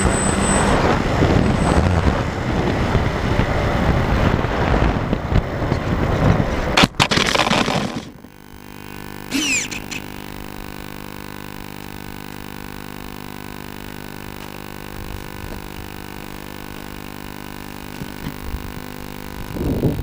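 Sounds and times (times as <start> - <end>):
falling whine: 0.0 - 20.0
steady electrical hum: 0.5 - 20.0.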